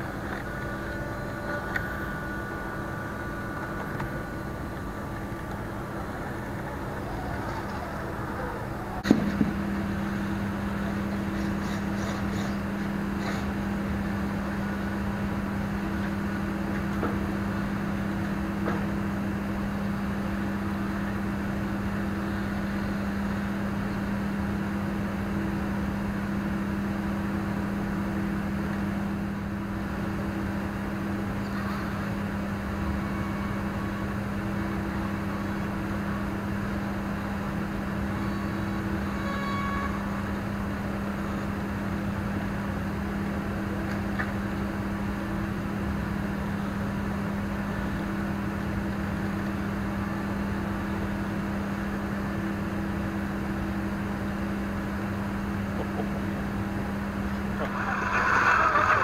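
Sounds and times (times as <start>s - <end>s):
faint high whines: 0.0s - 59.0s
steady low hum: 0.0s - 59.0s.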